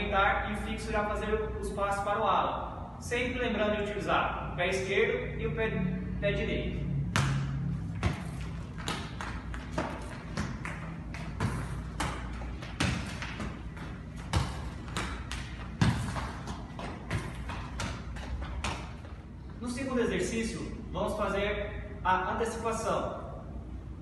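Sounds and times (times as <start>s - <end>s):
ball kicks and bounces on tiled floor: 7.1s - 19.2s.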